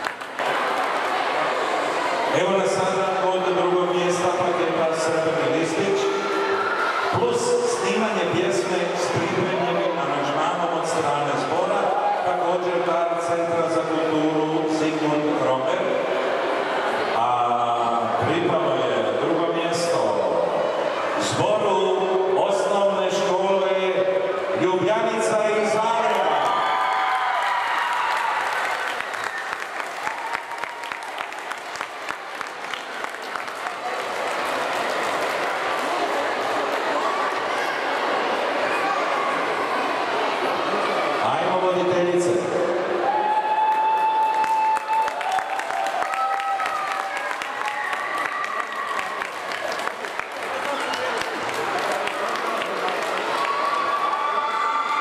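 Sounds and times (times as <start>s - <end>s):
audience applauding: 0.0s - 2.2s, 26.1s - 37.9s, 43.3s - 55.0s.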